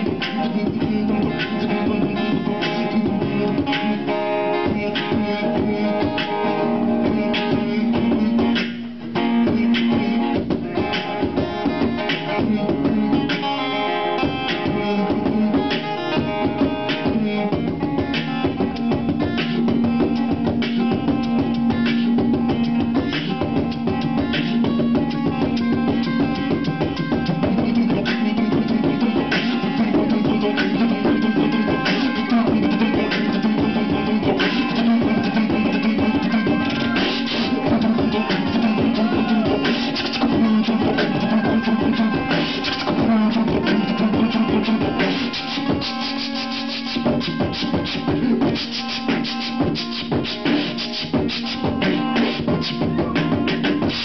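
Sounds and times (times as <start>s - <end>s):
acoustic guitar: 0.0s - 54.0s
vocal beatboxing: 0.0s - 54.0s.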